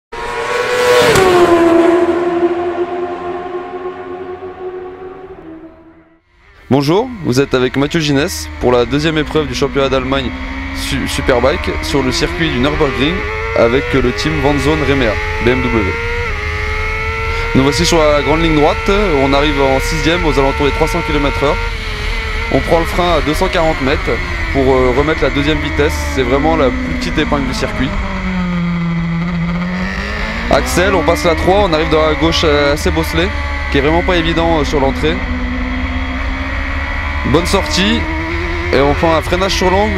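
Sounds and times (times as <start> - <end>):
high-revving engine passing: 0.1 - 6.2, 7.1 - 39.9.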